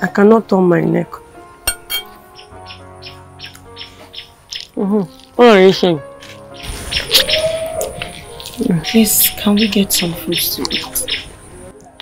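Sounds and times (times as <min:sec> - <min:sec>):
soft background music: 0:00.0 - 0:12.0
wet chewing and lip-smacking: 0:07.0 - 0:08.9.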